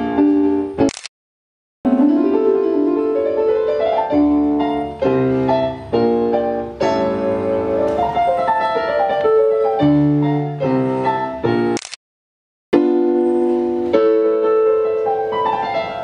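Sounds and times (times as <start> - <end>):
digital piano chords and runs: 0.0 - 0.9, 1.9 - 11.8, 12.8 - 16.0.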